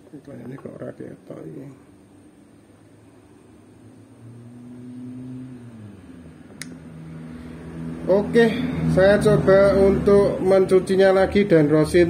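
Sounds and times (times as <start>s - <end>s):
low motor hum: 2.0s - 10.7s.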